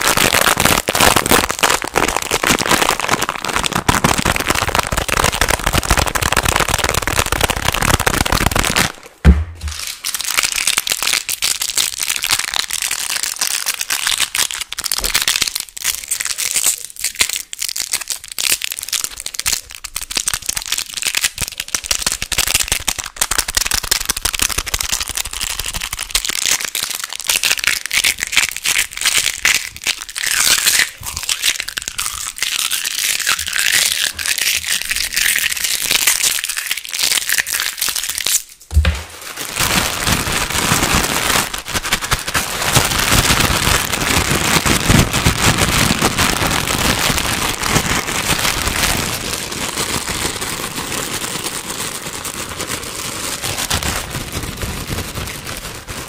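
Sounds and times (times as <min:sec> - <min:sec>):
packaging wrappers crinkling: 0:00.0 - 0:56.0
loud thump: 0:09.2 - 0:09.9, 0:38.7 - 0:39.2.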